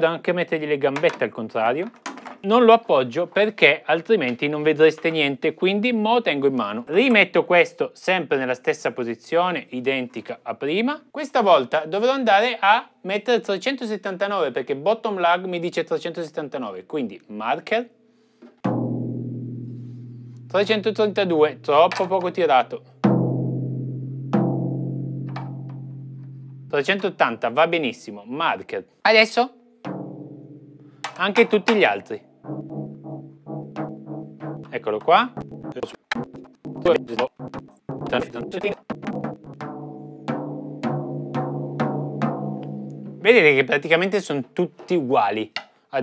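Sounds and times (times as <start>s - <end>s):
floor tom struck and ringing: 18.6s - 27.0s, 29.8s - 43.7s.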